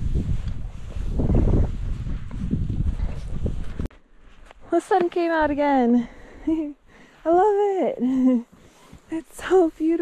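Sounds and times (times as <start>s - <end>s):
wind rumble on microphone: 0.0s - 3.9s
skis crunching through snow: 0.0s - 5.4s.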